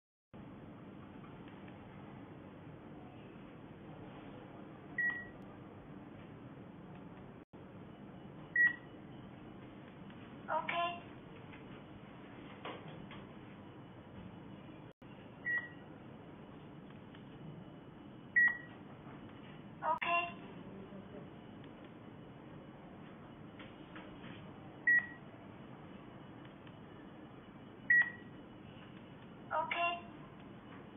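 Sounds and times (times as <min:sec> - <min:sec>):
scanner short high beeps: 0:05.0 - 0:05.4, 0:15.4 - 0:15.9.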